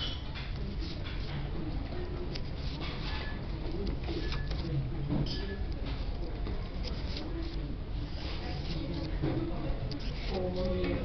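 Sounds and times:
book pages flipping: 0:02.2 - 0:04.8, 0:05.8 - 0:09.3.

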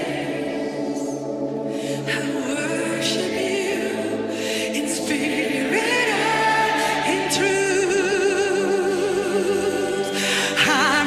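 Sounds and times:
voices singing worship song: 0:00.0 - 0:11.0.

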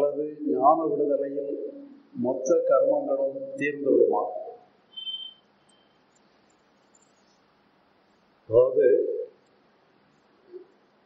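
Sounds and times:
man speaking: 0:00.0 - 0:04.6, 0:08.5 - 0:09.4.

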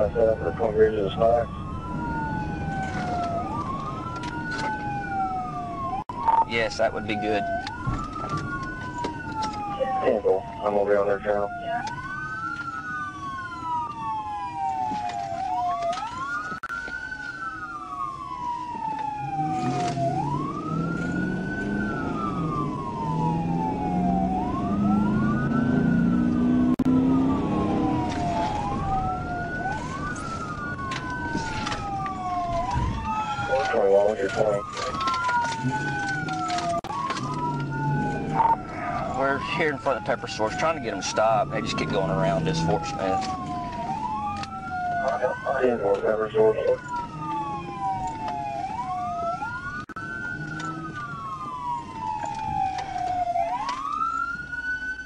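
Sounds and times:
engine and road noise: 0:00.0 - 0:55.0
police siren wailing: 0:00.0 - 0:55.0
second siren wail: 0:00.0 - 0:55.0.

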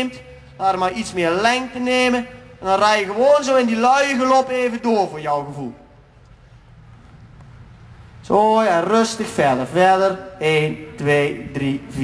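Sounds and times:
low steady rumble: 0:00.1 - 0:12.0.

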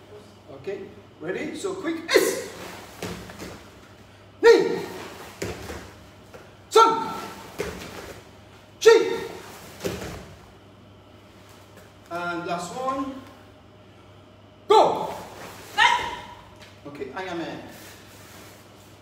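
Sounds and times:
man shouting: 0:01.8 - 0:02.8, 0:04.4 - 0:05.3, 0:06.7 - 0:07.6, 0:08.8 - 0:09.5, 0:14.7 - 0:16.5
thuds of landing on mats: 0:02.8 - 0:03.8, 0:05.0 - 0:06.4, 0:07.4 - 0:08.2, 0:09.7 - 0:10.4.

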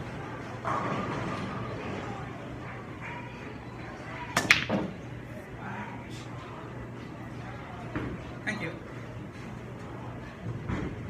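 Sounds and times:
pool balls clacking: 0:00.6 - 0:02.0, 0:04.3 - 0:05.1
cue tip striking ball: 0:04.4 - 0:05.0.

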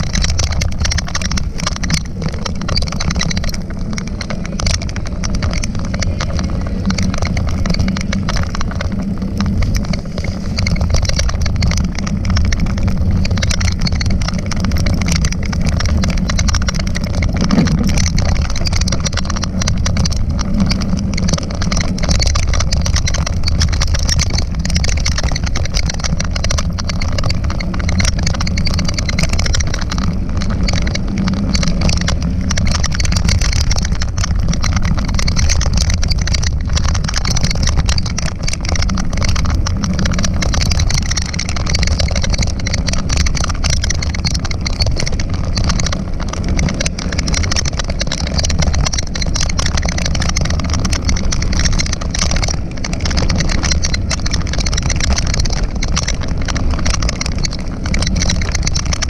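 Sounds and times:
tyres rolling on gravel: 0:00.0 - 0:59.0
wind buffeting microphone: 0:00.0 - 0:59.0.

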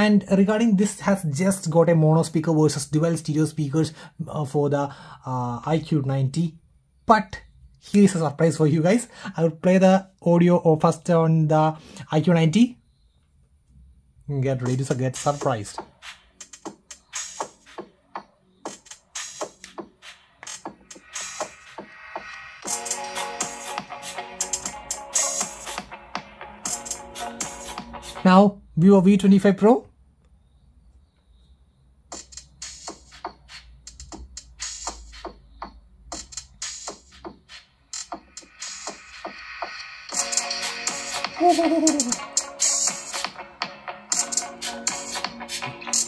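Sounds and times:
electronic dance music on phone speaker: 0:14.6 - 0:28.4, 0:32.1 - 0:46.0.

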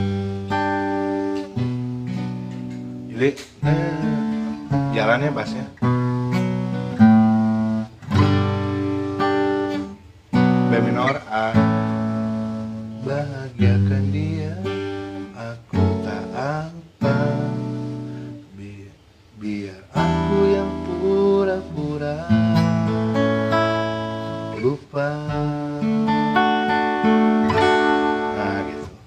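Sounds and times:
acoustic guitar strumming chords: 0:00.0 - 0:29.0.

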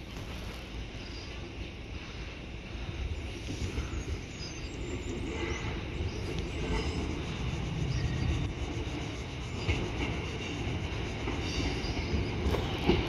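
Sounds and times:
diesel train rumbling: 0:00.0 - 0:13.0.

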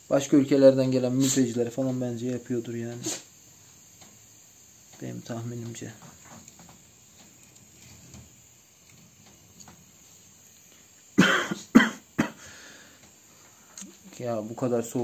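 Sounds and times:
man coughing: 0:11.2 - 0:12.5.

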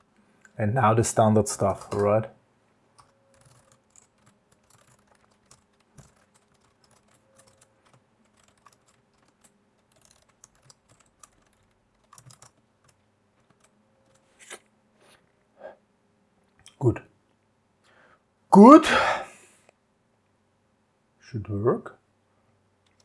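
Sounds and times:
typing on computer keyboard: 0:03.0 - 0:14.3.

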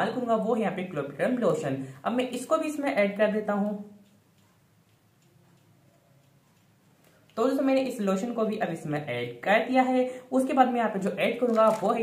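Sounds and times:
very faint ticks: 0:03.9 - 0:07.4.

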